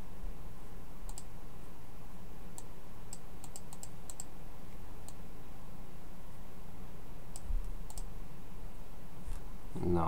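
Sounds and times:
steady low background hum: 0.0s - 10.0s
computer clicks: 1.1s - 1.3s, 2.5s - 4.3s, 7.3s - 8.1s.

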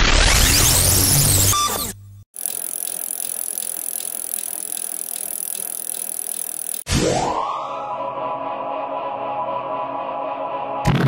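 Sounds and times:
bicycle wheels ticking: 2.4s - 6.9s.

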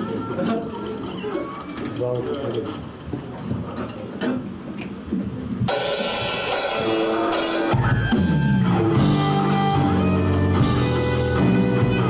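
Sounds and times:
quiet stage sounds: 0.0s - 12.0s
live rock band playing: 5.7s - 12.0s.

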